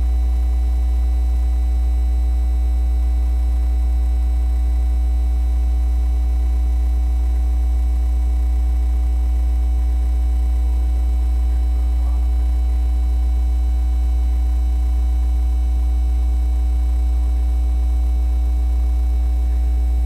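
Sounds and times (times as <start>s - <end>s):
electrical mains hum: 0.0s - 20.0s.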